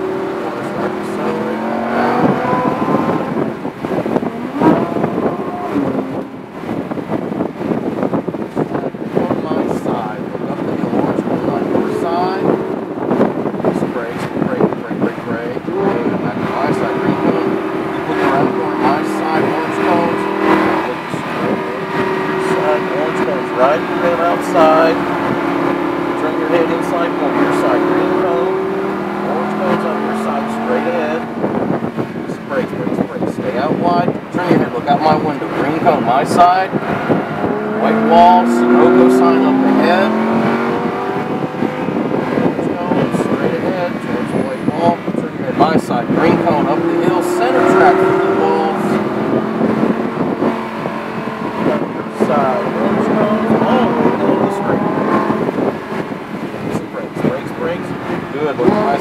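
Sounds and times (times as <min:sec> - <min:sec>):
car engine under load: 0:00.0 - 0:59.0.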